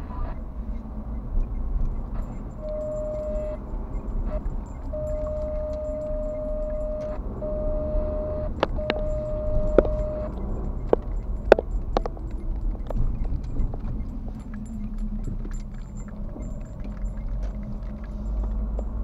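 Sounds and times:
car driving from inside cabin: 0:00.0 - 0:19.0.

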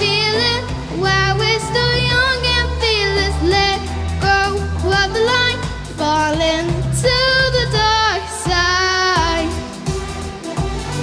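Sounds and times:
girl singing through a microphone: 0:00.0 - 0:09.8
musical accompaniment: 0:00.0 - 0:11.0.

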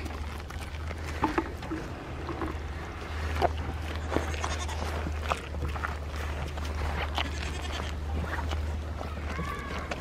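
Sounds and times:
goats munching wetly: 0:00.0 - 0:10.0.

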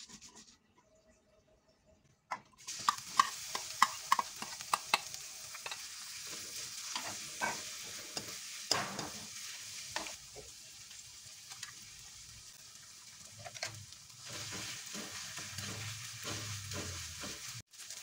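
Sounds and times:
shallots sizzling in hot oil: 0:02.6 - 0:18.0.

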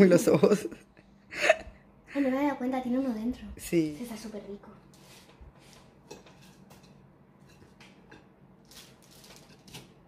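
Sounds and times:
fork scraping a plate: 0:04.9 - 0:10.0.

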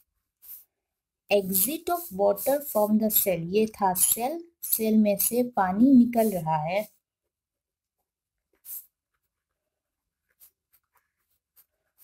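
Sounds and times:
pen scratching on paper: 0:00.0 - 0:07.0, 0:08.5 - 0:12.0.

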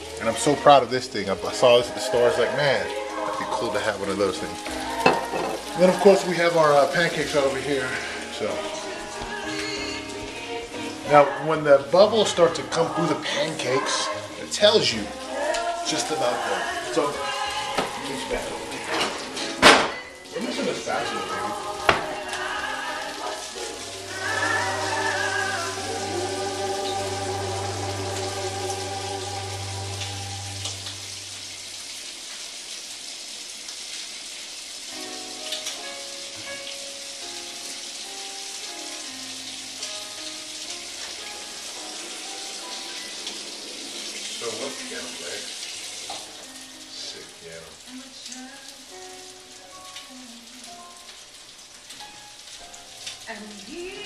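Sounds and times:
batter sizzling on griddle: 0:00.0 - 0:28.2, 0:29.6 - 0:49.9
background song: 0:00.0 - 0:31.8, 0:34.9 - 0:54.0.

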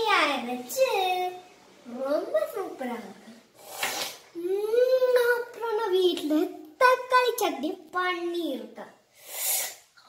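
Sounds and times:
child speaking: 0:00.0 - 0:03.4, 0:04.4 - 0:09.0
short breathy rush: 0:09.1 - 0:09.8.

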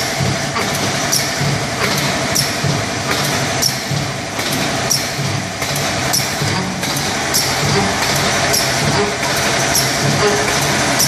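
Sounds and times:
packing machine running: 0:00.0 - 0:11.0
sharp machine tick: 0:00.0 - 0:11.0.

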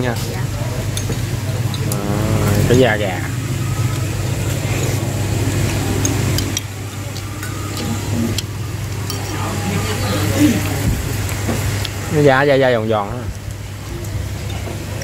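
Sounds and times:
faint background chatter: 0:00.0 - 0:15.0
low motor hum: 0:00.0 - 0:15.0.

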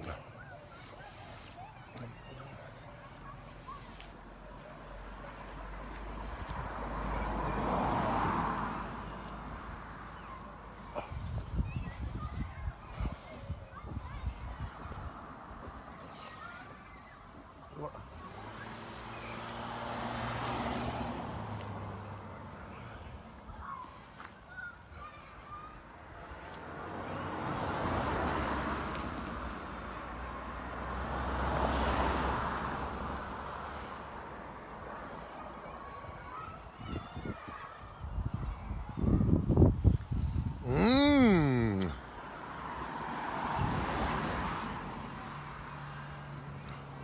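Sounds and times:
cars passing on road: 0:00.0 - 0:47.0
wind buffeting microphone: 0:11.1 - 0:15.2, 0:36.8 - 0:40.7.

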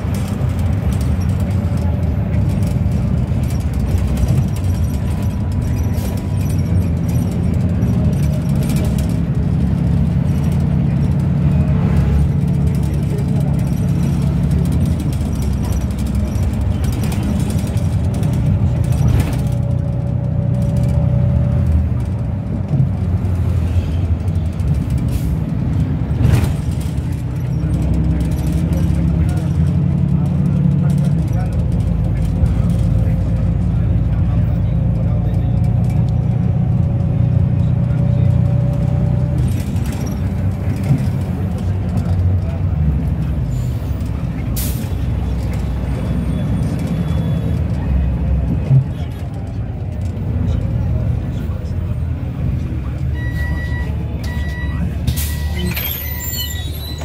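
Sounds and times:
bus engine and road rumble: 0:00.0 - 0:57.0.

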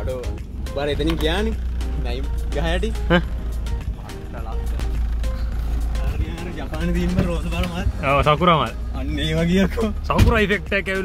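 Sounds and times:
car rumble from inside: 0:00.0 - 0:11.0
voices: 0:00.0 - 0:11.0.

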